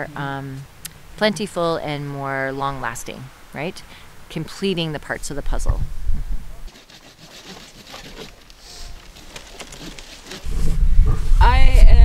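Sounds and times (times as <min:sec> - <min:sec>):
wind rumbling on microphone: 0:05.3 - 0:06.7, 0:10.4 - 0:12.0
faint clicks and rustles: 0:06.7 - 0:10.5.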